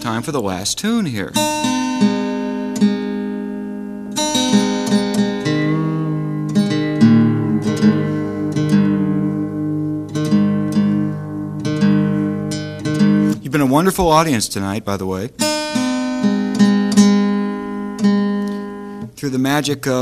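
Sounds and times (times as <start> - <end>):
acoustic guitar strings plucked: 0.0 - 14.4, 15.3 - 19.2
guitar note bending in pitch: 1.4 - 13.4.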